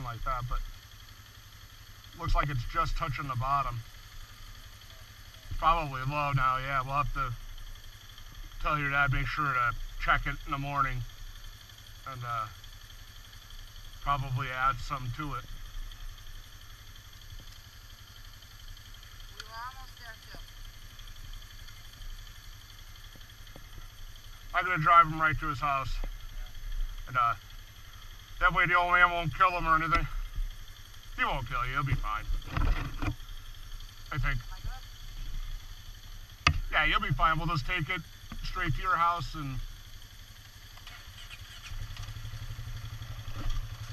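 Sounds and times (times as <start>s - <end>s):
engine idling: 0.0s - 43.9s.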